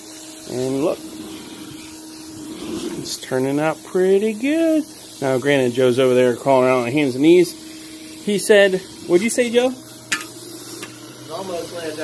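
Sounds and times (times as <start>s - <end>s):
steady machine hum: 0.0s - 12.0s
vacuum suction hiss: 0.0s - 12.0s.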